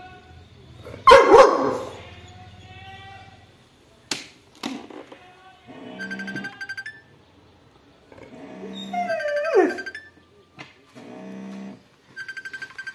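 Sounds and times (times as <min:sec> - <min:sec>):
dogs grumbling: 0:08.1 - 0:09.7
dog whining call: 0:08.3 - 0:10.1.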